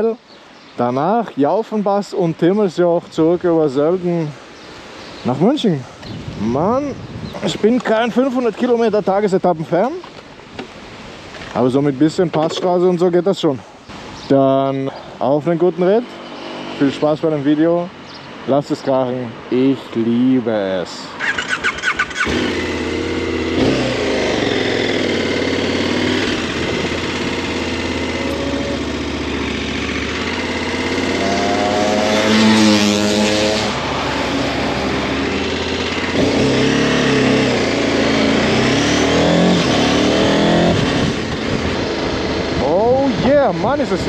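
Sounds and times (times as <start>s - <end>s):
motorcycle engine accelerating: 21.2s - 44.0s.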